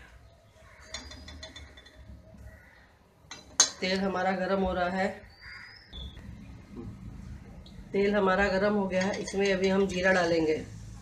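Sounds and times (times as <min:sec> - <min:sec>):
metal utensils clinking: 0:00.8 - 0:02.1, 0:08.4 - 0:10.2.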